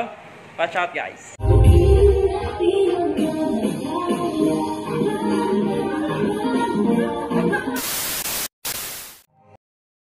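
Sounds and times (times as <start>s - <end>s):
tv static hiss: 7.8s - 9.3s.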